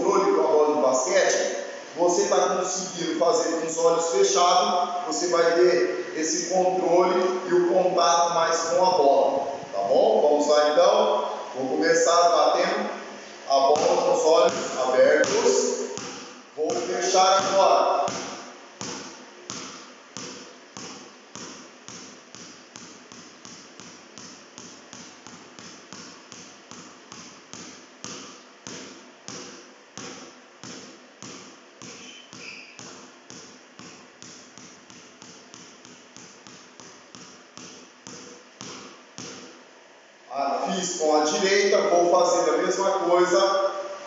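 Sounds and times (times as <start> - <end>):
basketball bouncing on hard floor: 13.8 - 39.6.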